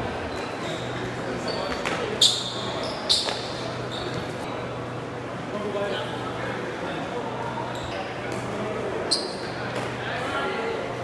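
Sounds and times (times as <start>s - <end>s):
murmur of voices: 0.0s - 11.0s
shoes squeaking on hall floor: 0.3s - 4.5s, 7.6s - 8.1s, 9.0s - 9.7s.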